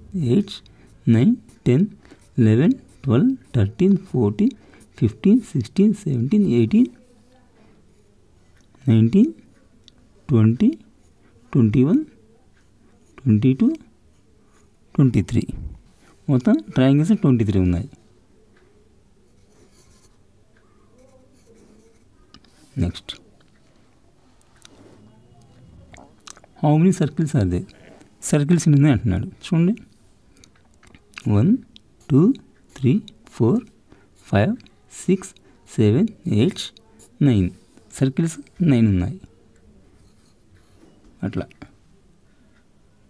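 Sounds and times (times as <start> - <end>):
pencil scratching on paper: 19.3 - 20.2, 20.9 - 22.8.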